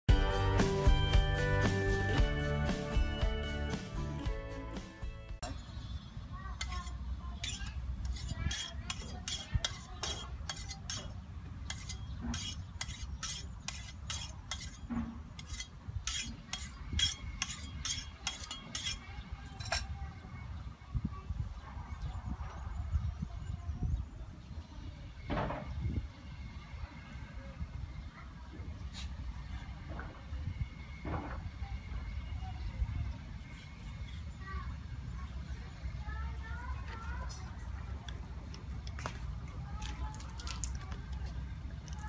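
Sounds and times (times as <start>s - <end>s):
knife cutting on wooden board: 7.4s - 11.1s.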